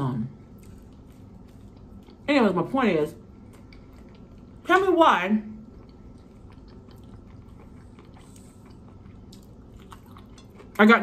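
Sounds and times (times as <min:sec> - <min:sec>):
person chewing food: 0:00.4 - 0:02.3, 0:03.2 - 0:04.6, 0:05.5 - 0:10.8.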